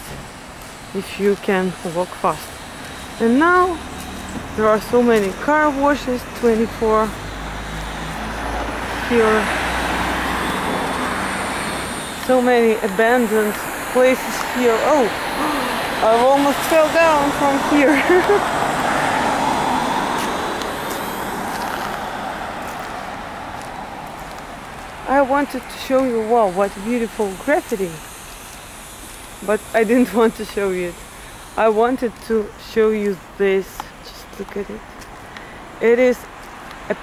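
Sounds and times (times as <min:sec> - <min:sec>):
car tyres hissing on wet road: 0:00.0 - 0:32.8
car driving past: 0:06.6 - 0:12.2, 0:17.0 - 0:25.1.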